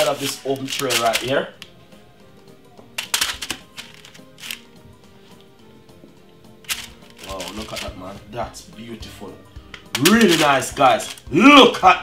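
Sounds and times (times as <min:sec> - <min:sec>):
baking paper crinkling: 0:00.0 - 0:01.6, 0:03.0 - 0:04.7, 0:06.7 - 0:08.2, 0:10.0 - 0:11.4
quiet background music: 0:00.0 - 0:12.0.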